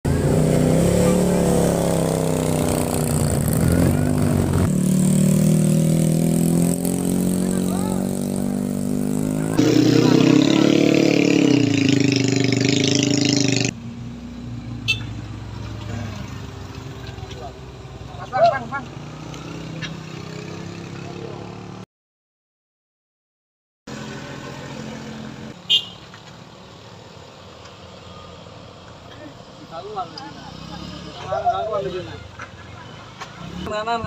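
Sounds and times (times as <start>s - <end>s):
motorcycle and car engines revving: 0.0s - 21.8s, 23.9s - 25.6s, 29.8s - 32.2s, 32.8s - 34.0s.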